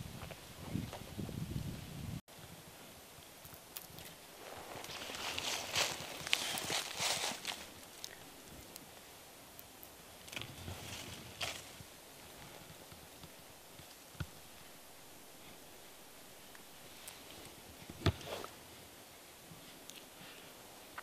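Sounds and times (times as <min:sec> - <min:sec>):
twigs and leaves rustling: 0:03.2 - 0:14.7.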